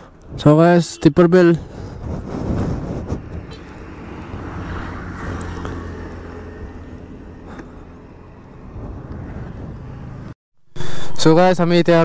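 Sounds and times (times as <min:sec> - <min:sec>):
vehicle engine humming: 0:01.5 - 0:10.4.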